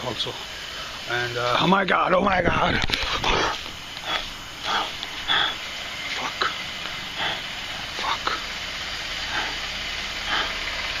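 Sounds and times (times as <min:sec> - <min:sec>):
camcorder recording hiss: 0:00.0 - 0:10.0
man breathing: 0:00.4 - 0:01.1, 0:03.0 - 0:11.0.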